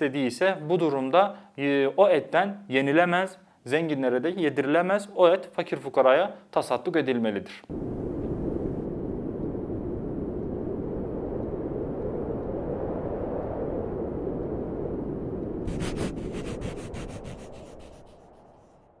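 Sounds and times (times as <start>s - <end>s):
low rushing noise: 7.7s - 19.0s.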